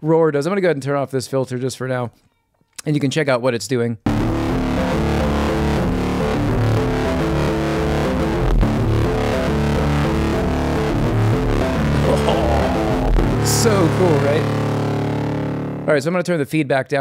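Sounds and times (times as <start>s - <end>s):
distorted synth music: 4.1s - 15.9s.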